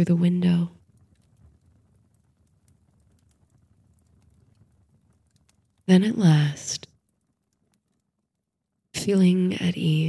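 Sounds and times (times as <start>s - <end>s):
fireplace crackling: 0.0s - 10.0s.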